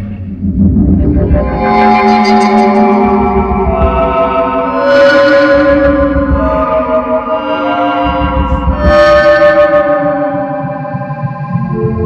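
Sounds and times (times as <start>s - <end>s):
low pulsing bass: 0.0s - 12.0s
held echoing tones: 0.1s - 12.0s
electronic music band: 0.4s - 12.0s.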